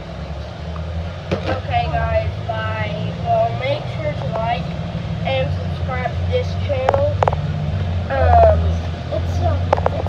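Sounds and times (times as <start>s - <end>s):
high-pitched voices talking: 8.1s - 10.0s.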